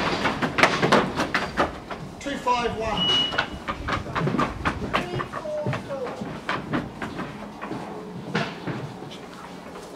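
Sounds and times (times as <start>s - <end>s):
sheep hooves on timber floor: 0.0s - 9.9s
faint voices: 3.9s - 6.5s.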